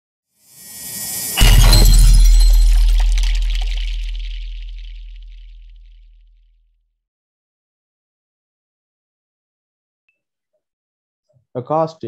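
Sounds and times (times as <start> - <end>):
glassy shattering shimmer: 0.5 - 5.8
whoosh: 0.5 - 5.9
cinematic impact with bass boom: 1.1 - 6.0.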